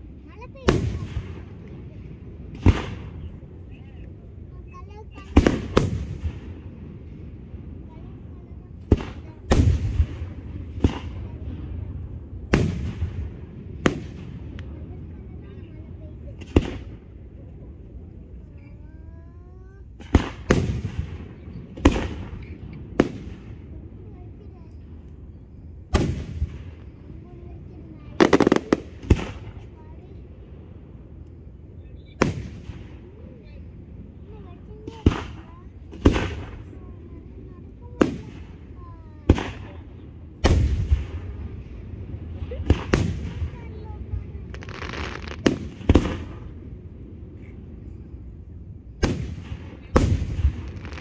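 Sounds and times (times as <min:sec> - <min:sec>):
fireworks booming with echo: 0:00.0 - 0:18.9, 0:19.6 - 0:51.0.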